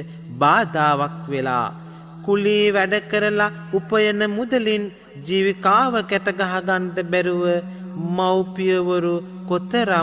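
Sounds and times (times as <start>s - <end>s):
man chanting melodically: 0.0s - 10.0s.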